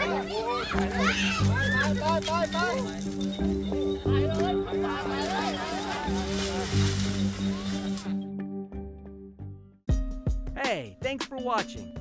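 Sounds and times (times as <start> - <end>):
music with steady beat: 9.9 - 12.0.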